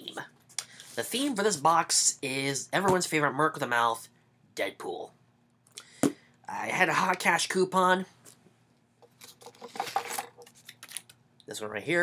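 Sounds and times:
package rustling and scraping: 0:09.0 - 0:11.2.

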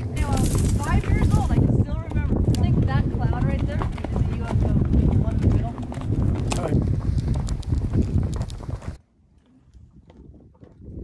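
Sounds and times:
hooves clopping on dirt: 0:00.0 - 0:11.0.

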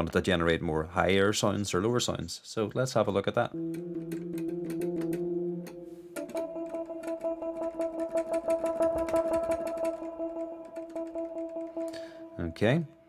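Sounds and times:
fast patter of clicks: 0:06.2 - 0:11.8.

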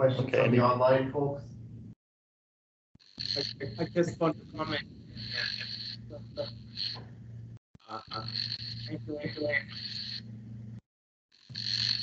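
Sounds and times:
garbled video call audio: 0:00.0 - 0:01.9, 0:03.0 - 0:07.1, 0:07.8 - 0:10.8, 0:11.5 - 0:12.0
steady low hum: 0:00.0 - 0:02.0, 0:03.0 - 0:10.8, 0:11.4 - 0:12.0.

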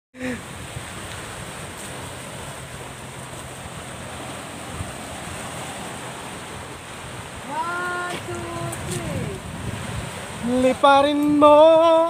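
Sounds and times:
sea surf: 0:00.2 - 0:12.0.

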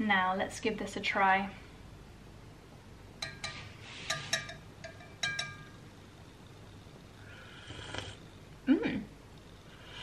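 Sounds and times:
metal spoon clinking on pot: 0:03.2 - 0:05.9.

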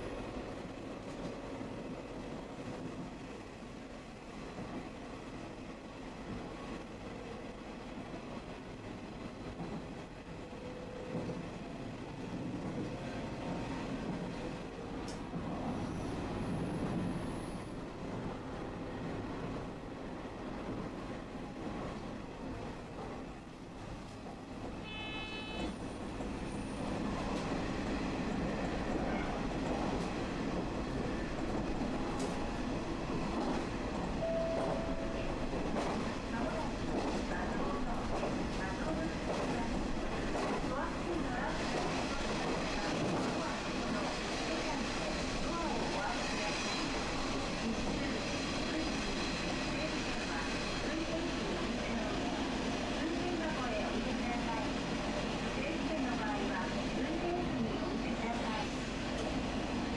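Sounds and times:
railcar engine and wheels: 0:00.0 - 0:59.9
short high beep: 0:24.9 - 0:25.7, 0:34.2 - 0:35.2.

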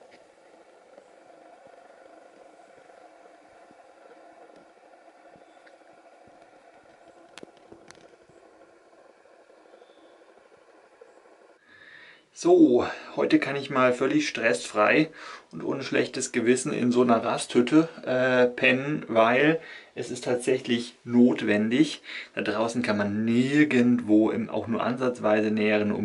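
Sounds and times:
faint background noise: 0:00.0 - 0:26.0.

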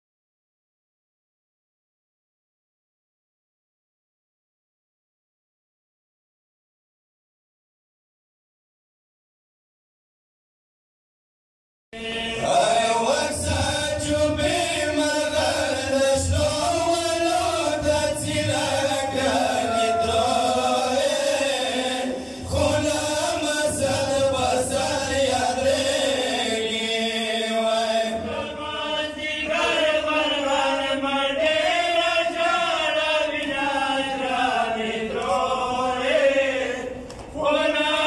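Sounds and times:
men chanting a lament: 0:12.0 - 0:38.0.

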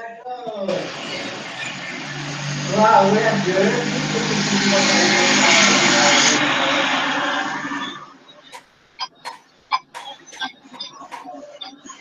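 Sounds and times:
muffled voice: 0:00.0 - 0:01.5, 0:02.7 - 0:12.0
loud steady rushing noise: 0:00.7 - 0:12.0.

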